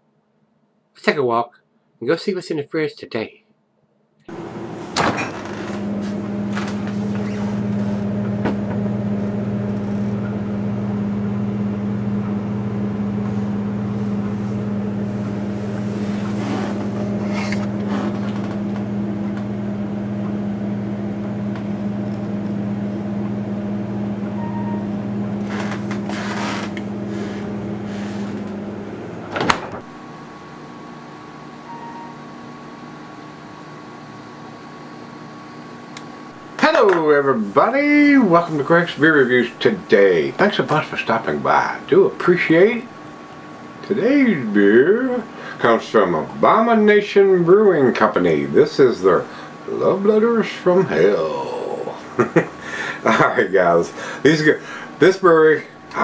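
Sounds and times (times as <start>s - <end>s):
refrigerator humming: 4.2s - 56.0s
faint steady whine: 4.3s - 56.0s.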